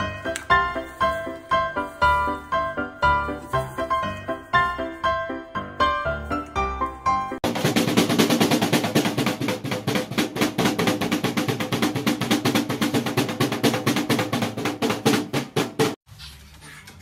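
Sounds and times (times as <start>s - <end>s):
webbed feet stamping on snare drum: 7.4s - 16.0s.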